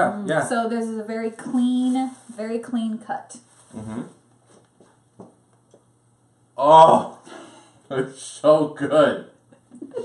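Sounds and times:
man saying mm: 0:03.7 - 0:04.2.

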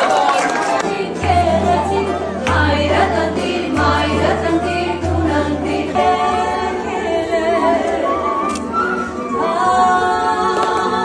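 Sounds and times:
voices singing together: 0:00.0 - 0:11.0.

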